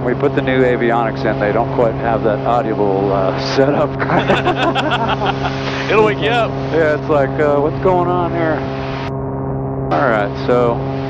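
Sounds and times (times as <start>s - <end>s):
piston engines droning: 0.0s - 11.0s
people laughing: 3.5s - 6.4s.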